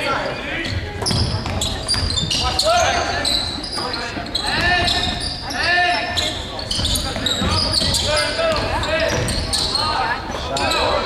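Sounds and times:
sneakers squeaking: 0.0s - 11.0s
voices echoing in hall: 0.0s - 11.0s.

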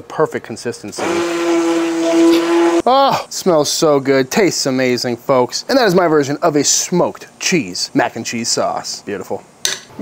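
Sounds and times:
immersion blender motor whining: 1.0s - 2.9s.

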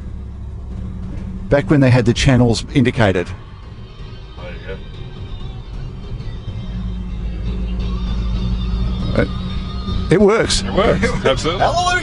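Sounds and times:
steady low hum: 0.0s - 11.4s
car road noise: 0.0s - 12.0s
car radio playing: 0.2s - 12.0s.

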